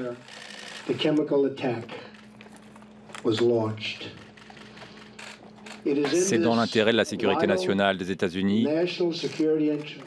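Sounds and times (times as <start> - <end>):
camera shutters clicking: 2.1 - 6.1, 9.1 - 10.0
man speaking: 5.9 - 9.9.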